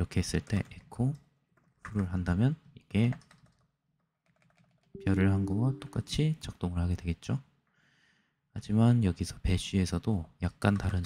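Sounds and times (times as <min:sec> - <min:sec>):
faint keyboard typing: 0:00.2 - 0:02.2, 0:02.9 - 0:06.1, 0:10.7 - 0:11.0.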